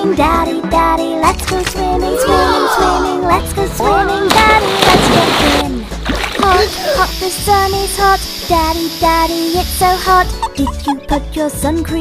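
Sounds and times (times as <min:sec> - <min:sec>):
children's song with backing music: 0:00.0 - 0:12.0
splash of water: 0:04.3 - 0:07.4.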